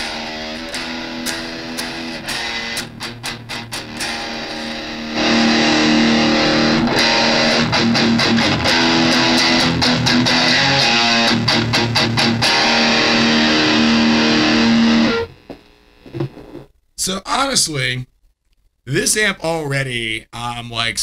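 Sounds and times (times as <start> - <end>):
distorted electric guitar chords: 0.0 - 16.7.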